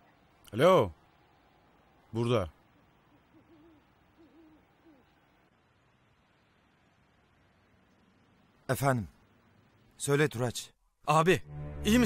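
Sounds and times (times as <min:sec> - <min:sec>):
owl hooting: 0:03.1 - 0:05.3.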